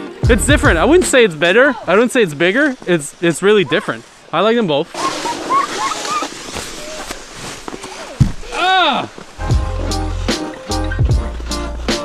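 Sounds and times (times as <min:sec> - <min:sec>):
ice skates scraping on ice: 0:05.1 - 0:08.2.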